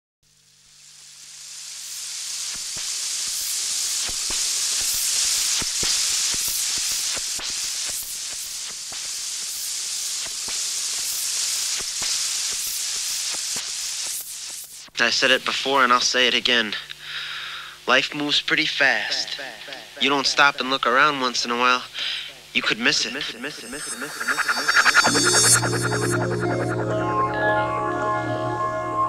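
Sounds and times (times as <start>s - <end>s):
record surface crackle: 0.6s - 15.0s.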